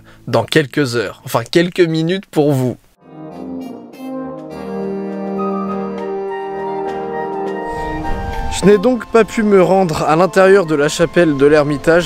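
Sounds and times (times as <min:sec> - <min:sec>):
orchestral music with brass: 0:03.0 - 0:12.0.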